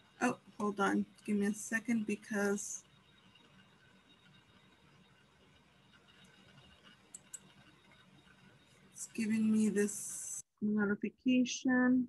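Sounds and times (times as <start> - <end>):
computer mouse clicks: 6.1 - 8.0.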